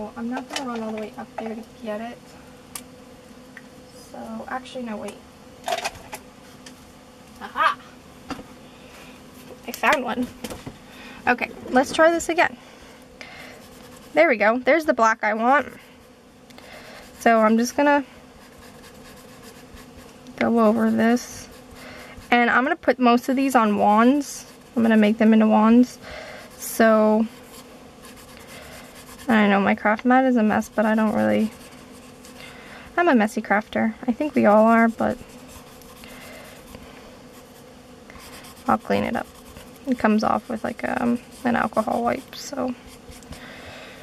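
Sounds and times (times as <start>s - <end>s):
faint steady hum: 0.0s - 44.0s
marker scratching on paper: 13.5s - 15.5s, 17.1s - 32.4s, 34.3s - 43.4s.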